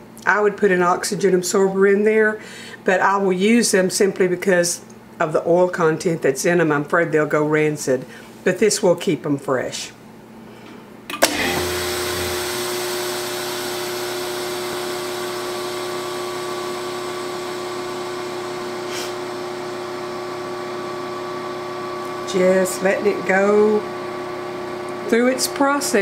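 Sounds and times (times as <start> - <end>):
vacuum pump humming: 11.1 - 26.0.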